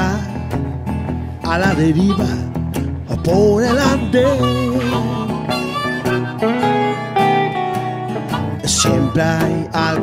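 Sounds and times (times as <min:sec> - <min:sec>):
guitar playing: 0:00.0 - 0:10.0
person singing blues: 0:00.0 - 0:10.0
harmonica holding long notes: 0:01.4 - 0:10.0.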